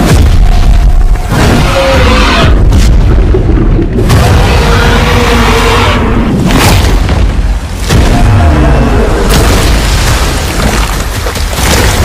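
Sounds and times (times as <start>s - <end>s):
deep booming hits: 0.0s - 5.2s, 6.2s - 10.8s
trailer music: 0.0s - 9.8s.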